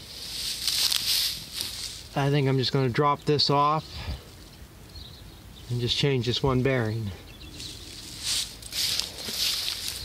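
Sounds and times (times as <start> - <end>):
footsteps through dry grass: 0.0 - 2.4, 7.5 - 10.0.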